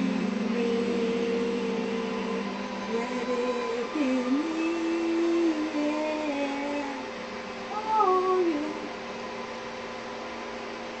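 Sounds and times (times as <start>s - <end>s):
woman's sing-song vocal: 0.0s - 9.0s
faint steady hum: 0.0s - 11.0s.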